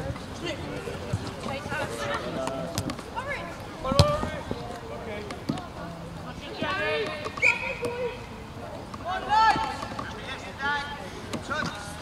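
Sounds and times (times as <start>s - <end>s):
football kicked sharply: 3.9s - 4.3s
distant shouts of players: 6.6s - 11.0s.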